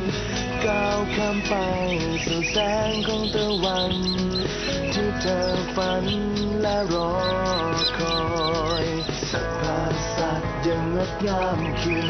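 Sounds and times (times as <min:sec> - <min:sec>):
slow pop song: 0:00.0 - 0:12.0.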